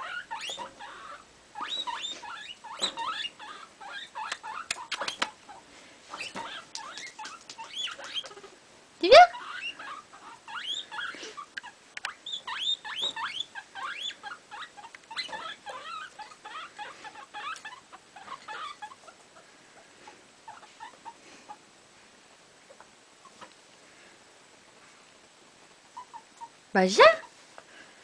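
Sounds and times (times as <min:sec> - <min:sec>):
guinea pig rising call: 0:00.0 - 0:19.5
guinea pig squeaking: 0:00.0 - 0:19.5, 0:20.4 - 0:21.6, 0:25.9 - 0:27.3.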